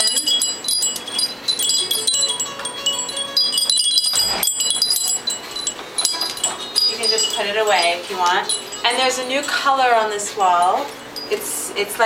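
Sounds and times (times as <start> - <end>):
metal chimes ringing: 0.0 - 12.0.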